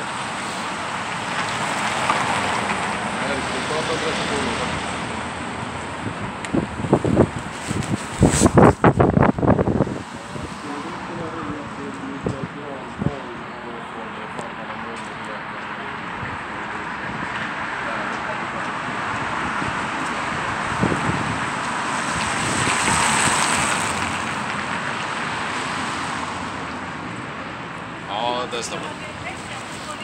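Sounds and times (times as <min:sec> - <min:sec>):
vehicle passing by: 0:00.0 - 0:30.0.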